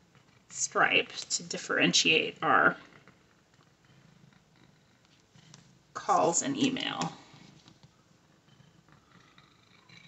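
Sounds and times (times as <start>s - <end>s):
cat purring faintly: 2.3s - 6.3s, 8.3s - 10.0s.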